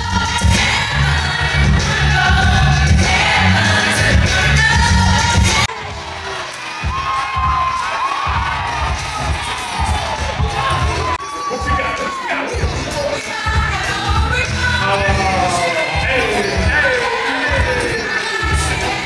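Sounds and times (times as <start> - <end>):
crowd cheering and singing along: 0.0 - 19.0
live gospel music with heavy bass: 0.0 - 19.0.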